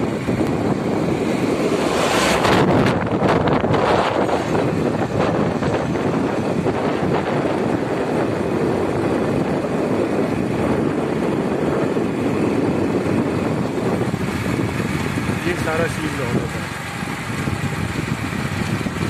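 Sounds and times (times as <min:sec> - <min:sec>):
vehicle road noise: 0:00.0 - 0:19.0
wind rush: 0:00.0 - 0:19.0.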